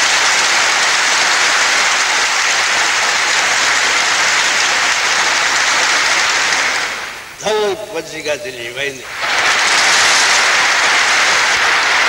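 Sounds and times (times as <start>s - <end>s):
audience applauding: 0.0s - 12.0s.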